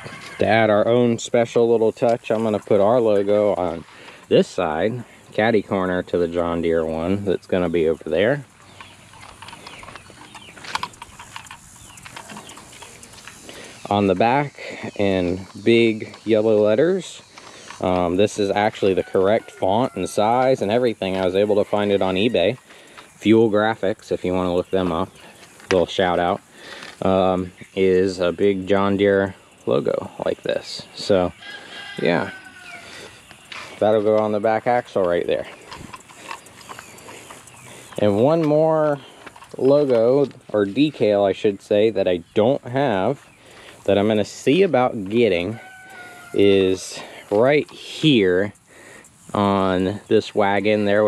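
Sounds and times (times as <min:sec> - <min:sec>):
birds chirping: 0:00.0 - 0:51.0
sharp clicks: 0:08.5 - 0:18.9
short animal sounds: 0:31.4 - 0:33.9.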